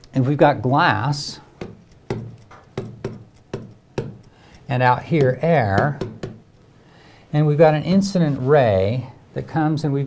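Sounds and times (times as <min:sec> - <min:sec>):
stylus tapping on glass: 0:01.6 - 0:04.4, 0:05.1 - 0:06.5.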